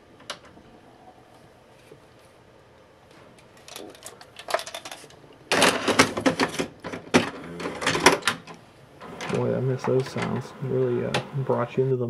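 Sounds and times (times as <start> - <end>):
tape mechanism clicks and clunks: 5.5 - 11.8.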